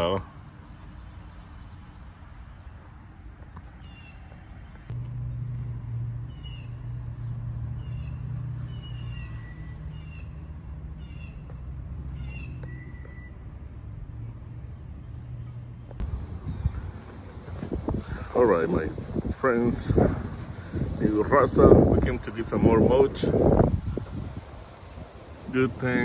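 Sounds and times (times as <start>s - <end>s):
low steady hum: 4.8s - 8.7s.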